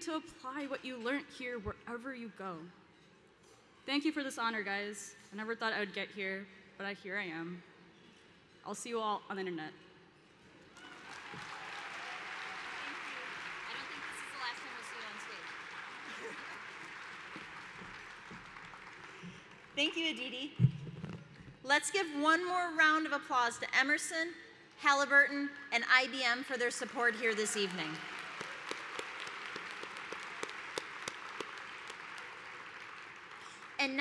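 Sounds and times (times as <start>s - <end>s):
large audience applauding: 10.8s - 19.8s, 27.0s - 34.0s.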